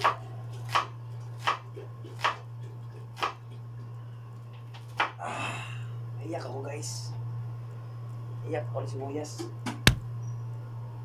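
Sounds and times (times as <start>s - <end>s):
steady low hum: 0.0s - 11.0s
cleaver chopping: 9.7s - 10.1s.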